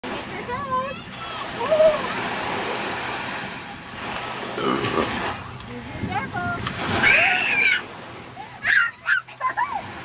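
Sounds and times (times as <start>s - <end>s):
small waves washing onto sand: 0.0s - 10.0s.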